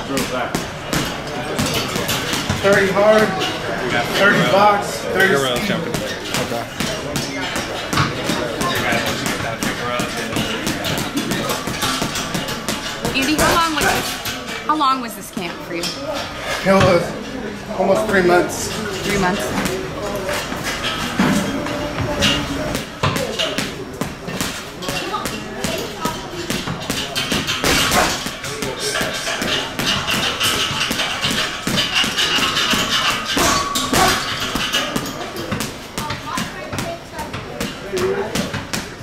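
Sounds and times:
boxing gloves hitting heavy bag: 22.7s - 38.9s.

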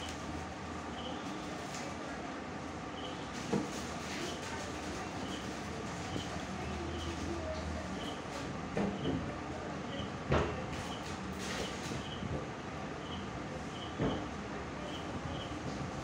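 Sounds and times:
background hum and hiss: 0.0s - 16.0s.

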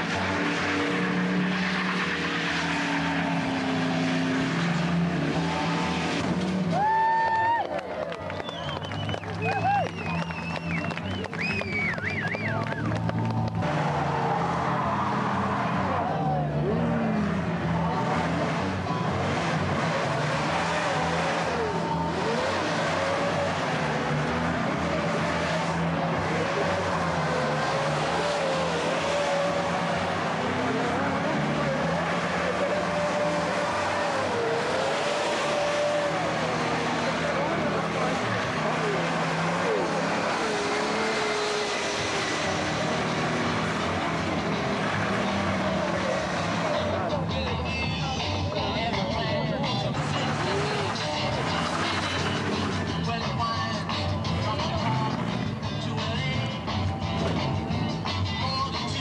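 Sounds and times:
tyres squealing: 0.0s - 57.6s
car engine at high revs: 0.0s - 58.2s.

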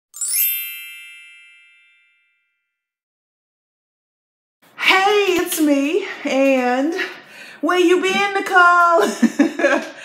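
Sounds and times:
bright chime: 0.1s - 2.8s.

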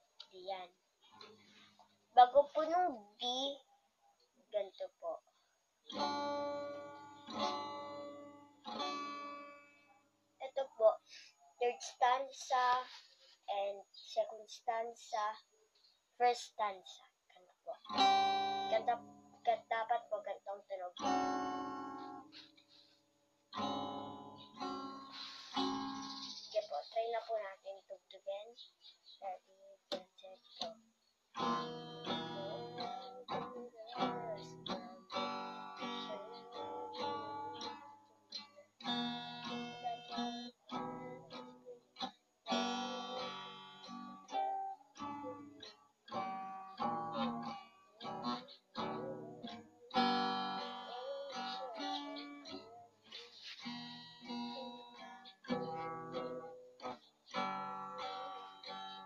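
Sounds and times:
acoustic guitar strumming chords: 5.9s - 9.9s, 17.7s - 22.9s, 23.5s - 28.3s, 29.2s - 59.0s.

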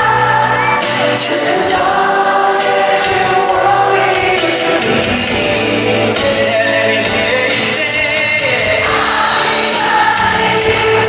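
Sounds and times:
live band backing: 0.0s - 11.0s.

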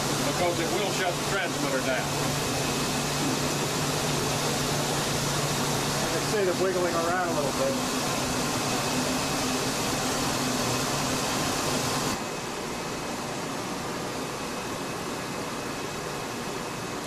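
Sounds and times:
cooling water rushing: 0.0s - 12.2s.

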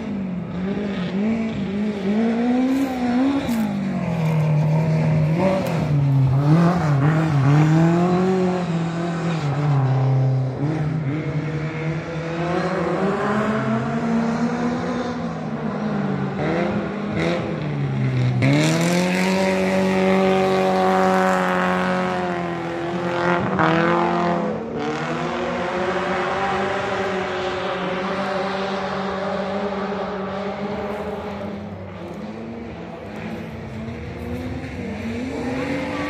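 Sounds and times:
race car engine revving: 0.0s - 36.0s.

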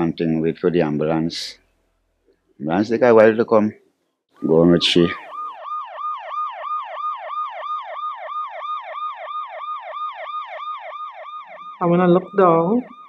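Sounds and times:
ambulance siren yelping: 4.4s - 13.0s.

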